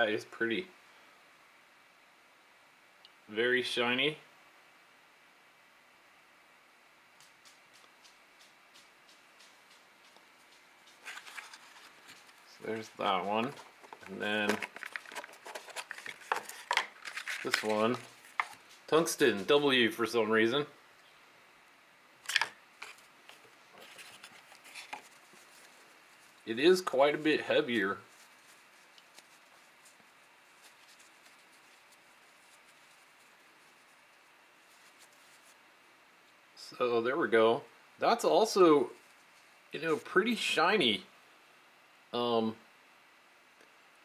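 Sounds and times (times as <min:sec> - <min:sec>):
cloth rustling: 0:10.3 - 0:19.0, 0:22.3 - 0:35.6.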